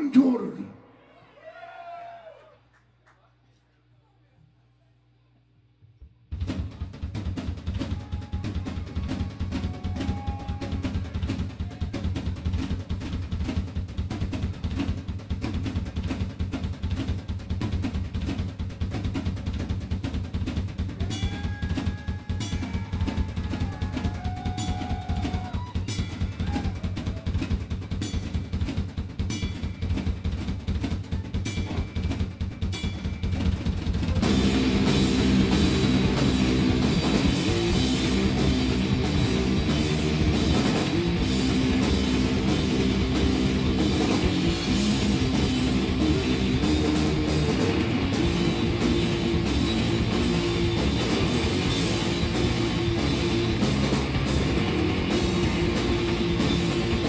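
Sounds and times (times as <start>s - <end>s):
bass drum and snare pattern: 6.3s - 57.0s
cymbal strikes: 22.3s - 23.1s, 27.9s - 30.6s, 31.4s - 34.8s.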